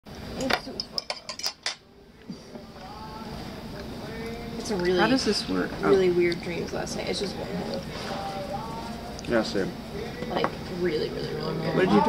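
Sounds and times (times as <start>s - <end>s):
knife and fork clinking on plate: 0.5s - 1.8s.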